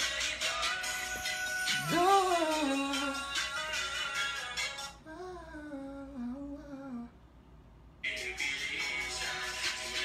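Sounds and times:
person humming: 0:01.7 - 0:03.4, 0:05.0 - 0:07.2.

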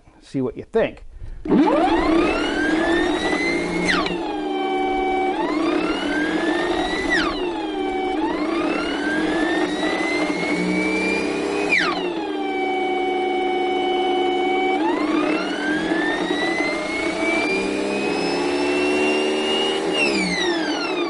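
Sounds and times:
electric motor whine: 0:01.4 - 0:21.0.

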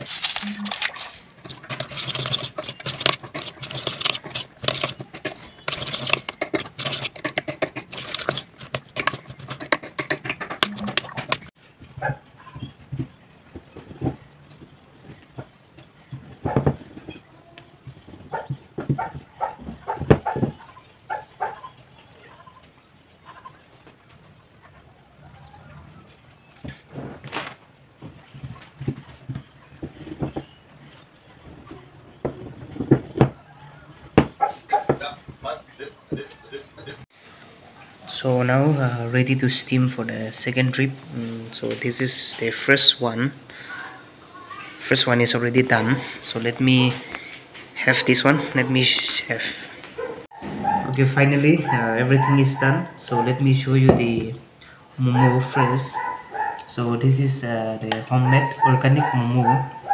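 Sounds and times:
meat filling mixed in steel pot: 0:00.0 - 0:19.7, 0:28.0 - 0:54.4
rolling pin on wooden board: 0:01.4 - 0:11.9, 0:12.6 - 0:17.2.

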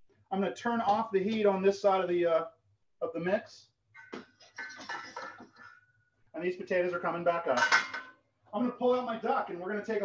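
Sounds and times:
saucepan clinking on metal grate: 0:07.6 - 0:08.2.

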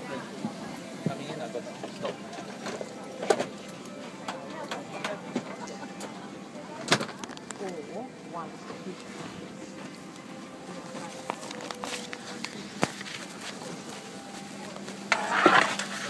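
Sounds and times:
murmur of passengers talking: 0:00.0 - 0:16.0.

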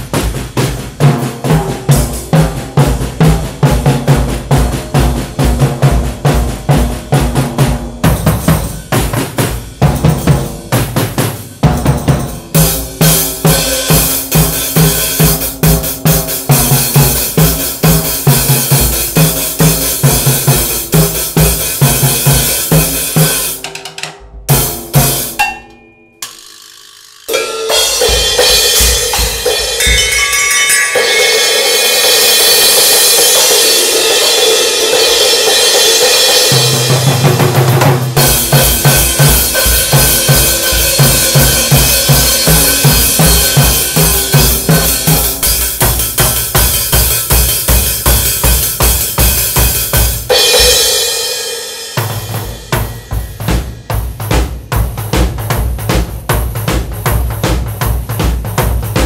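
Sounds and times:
drum kit rock beat: 0:00.0 - 0:59.0
crashing cymbals: 0:24.5 - 0:54.2.

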